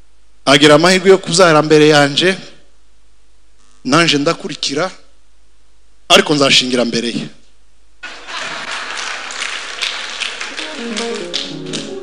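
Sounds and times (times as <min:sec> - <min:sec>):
congregation applauding: 0:08.0 - 0:12.0.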